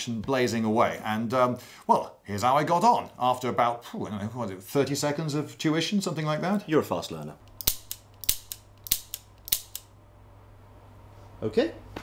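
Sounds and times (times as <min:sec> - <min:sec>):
revolver dry-fire metallic clicks: 0:07.4 - 0:09.9.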